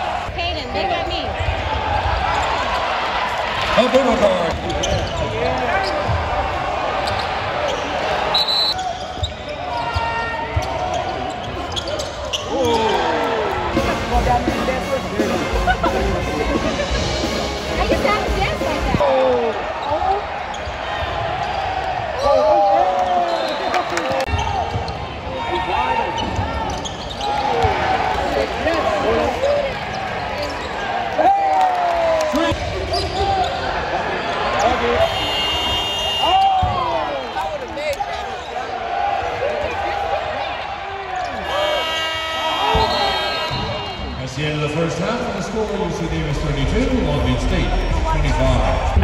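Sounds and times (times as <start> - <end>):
murmur of crowd voices: 0.0 - 49.0
sneakers squeaking on hardwood: 4.5 - 6.3, 7.0 - 12.8, 26.1 - 27.8.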